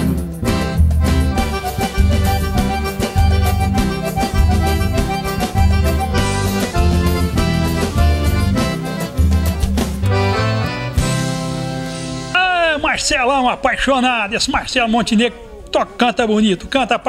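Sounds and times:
bass and drum beat: 0.0 - 12.3
button accordion melody: 0.0 - 12.3
strummed acoustic guitar: 0.0 - 12.4.

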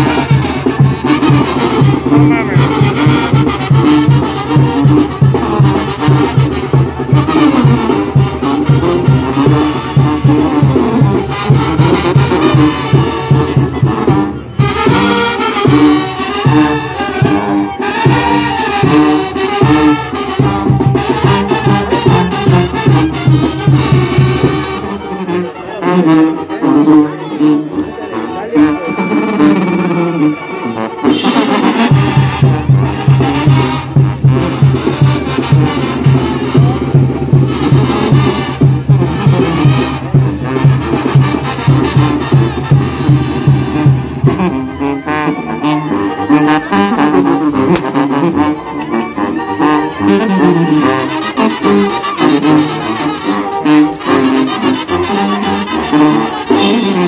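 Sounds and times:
sousaphone bass line: 0.0 - 5.8
brass band playing: 0.0 - 57.0.

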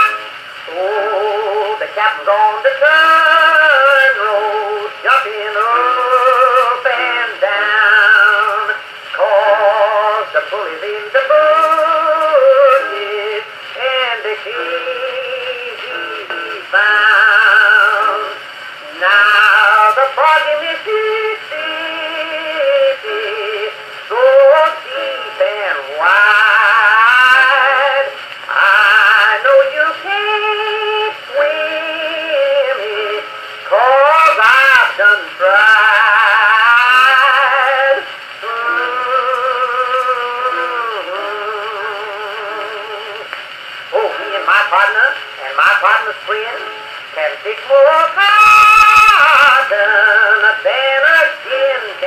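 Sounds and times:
old phonograph country song: 0.0 - 52.0.

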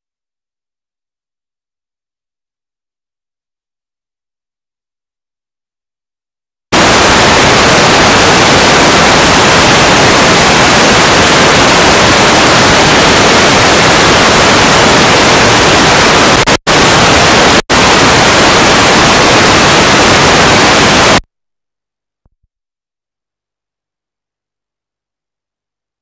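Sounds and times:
loud static hiss: 6.8 - 21.2.

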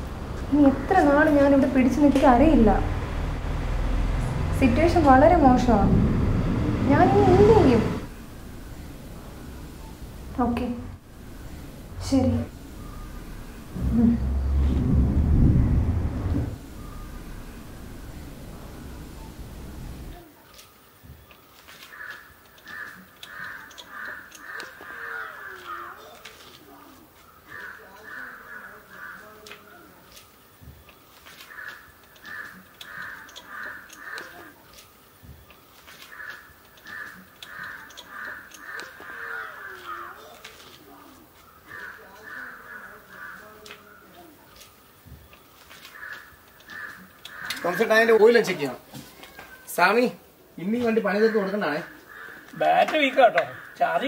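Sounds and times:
crows cawing: 21.7 - 30.1, 31.3 - 34.7, 35.9 - 44.6, 45.3 - 50.0, 50.6 - 54.0.

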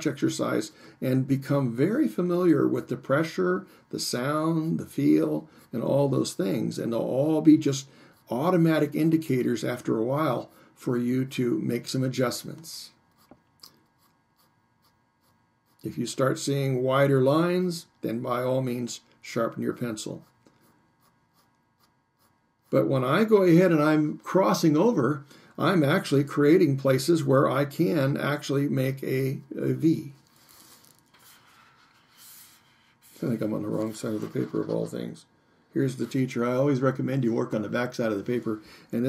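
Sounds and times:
pencil scratching on paper: 13.1 - 15.9, 20.1 - 23.2, 30.5 - 33.2.

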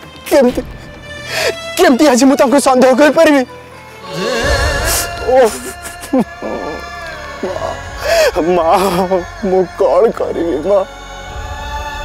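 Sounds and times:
background music: 0.0 - 12.0
falling wail: 4.0 - 9.4
man sobbing: 4.0 - 9.4.

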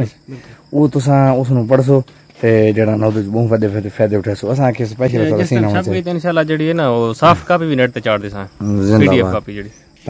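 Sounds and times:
crickets chirring: 0.0 - 10.0
man speaking: 0.8 - 9.8.

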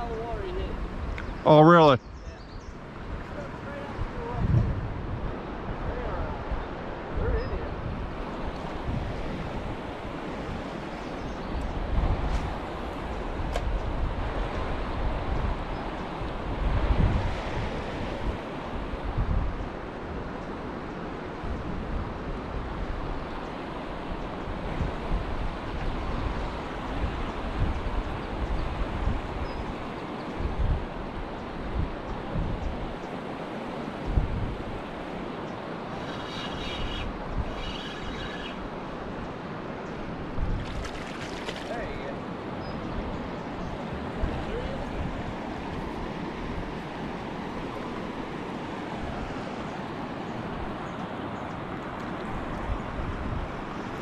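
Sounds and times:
rushing river water: 0.0 - 54.0
wind gusting on microphone: 0.0 - 54.0.

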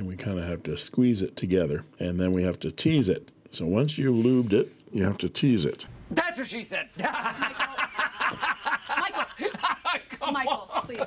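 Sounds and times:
man laughing hard: 7.0 - 11.0.

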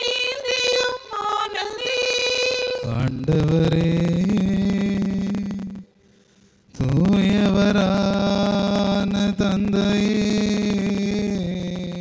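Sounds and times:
man chanting a prayer: 6.8 - 12.0.

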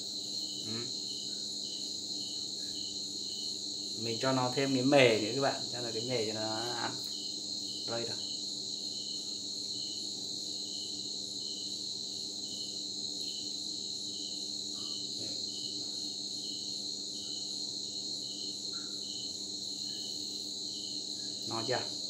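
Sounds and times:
crickets chirping: 0.0 - 22.0.

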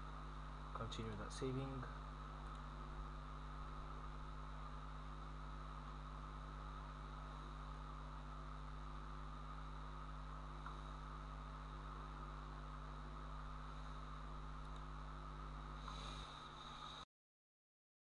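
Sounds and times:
low electrical hum: 0.0 - 17.1.

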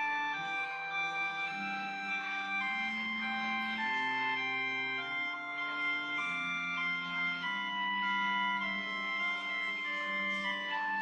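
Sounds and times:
organ playing slow chords: 0.0 - 11.0.

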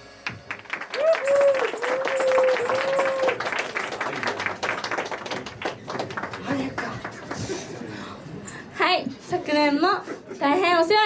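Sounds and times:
audience clapping: 0.2 - 7.8
long held shout: 1.0 - 3.4.

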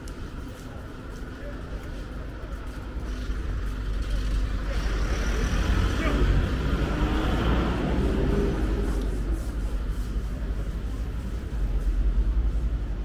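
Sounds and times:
street noise: 0.0 - 13.0
vehicle passing by: 4.1 - 9.9.

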